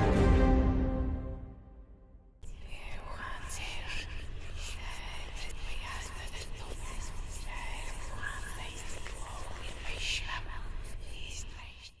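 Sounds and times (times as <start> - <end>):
whispering voices: 2.4 - 12.0.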